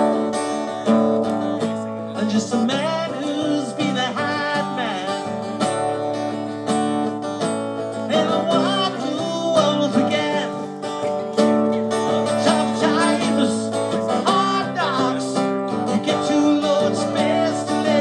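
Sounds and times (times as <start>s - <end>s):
acoustic guitar strummed and picked: 0.0s - 18.0s.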